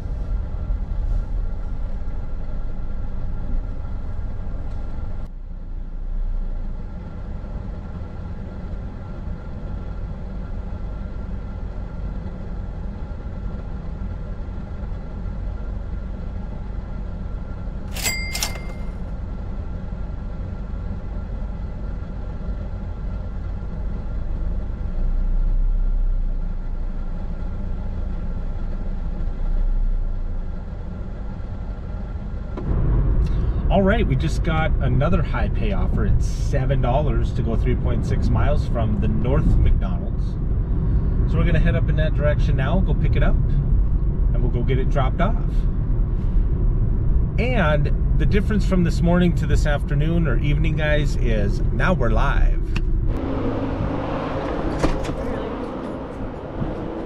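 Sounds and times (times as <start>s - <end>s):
car engine idling: 0.0s - 18.1s, 18.8s - 57.0s
short bright chimes: 18.0s - 19.0s.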